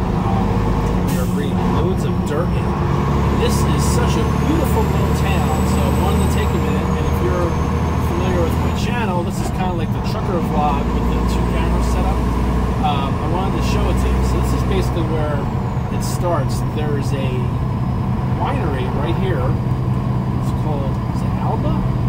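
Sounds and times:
diesel engine droning: 0:00.0 - 0:22.0.

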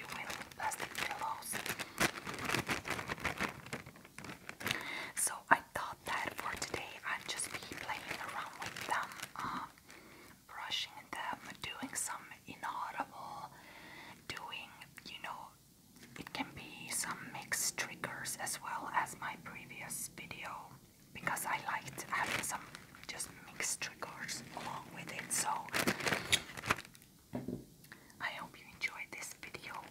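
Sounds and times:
close-up whispering: 0:00.0 - 0:02.1, 0:04.6 - 0:26.3, 0:28.2 - 0:29.9.

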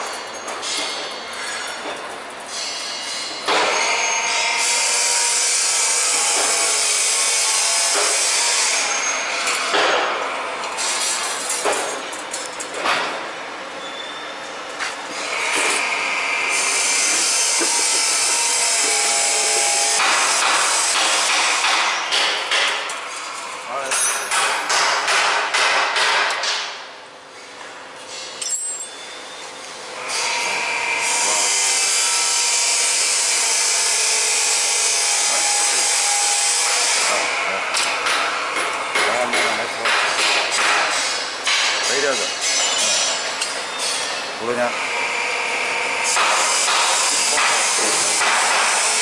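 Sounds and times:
machine clanks and rattles: 0:00.0 - 0:13.4, 0:17.0 - 0:26.8, 0:37.7 - 0:44.3.

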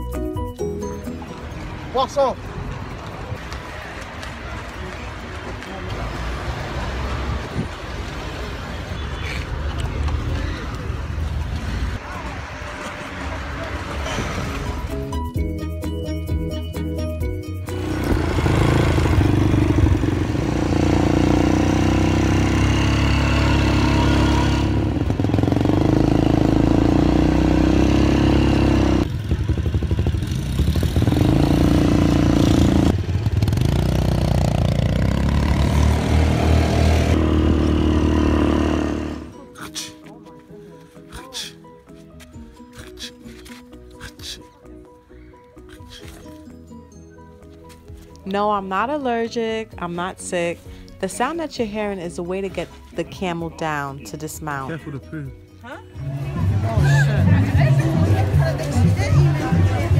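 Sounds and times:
street traffic: 0:00.0 - 0:59.9
quad bike engines running: 0:17.7 - 0:39.3.

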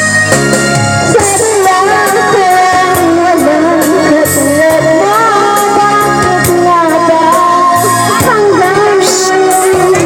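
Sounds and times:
backing music: 0:00.0 - 0:10.0
woman singing into microphone: 0:01.0 - 0:10.0.

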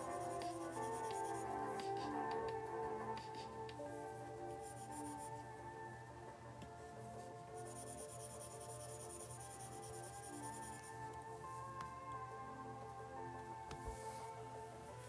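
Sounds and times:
stylus scratching on screen: 0:00.0 - 0:02.2, 0:07.6 - 0:10.9
background music with held tones: 0:00.0 - 0:15.0.

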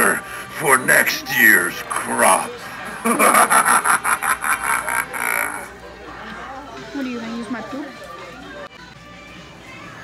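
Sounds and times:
rhythmic laughter: 0:02.7 - 0:05.8.

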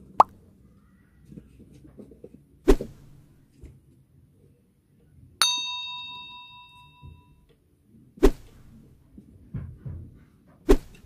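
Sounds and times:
bright bell ding: 0:05.4 - 0:07.4.

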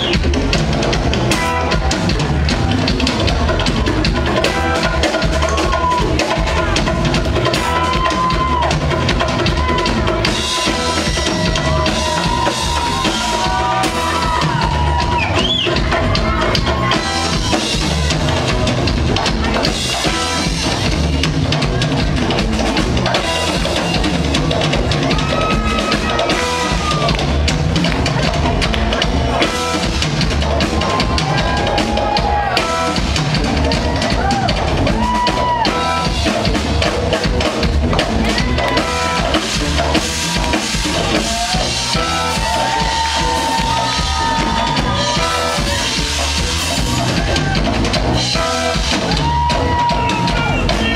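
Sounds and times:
drum kit beat: 0:00.0 - 0:50.9
guitar: 0:00.0 - 0:50.9
keyboards: 0:00.0 - 0:50.9
live reggae band playing: 0:00.0 - 0:50.9.

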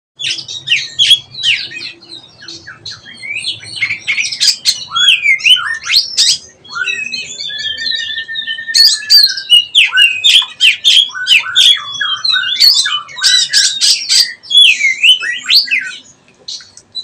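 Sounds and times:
bird singing chirps and whistles: 0:00.2 - 0:17.0.

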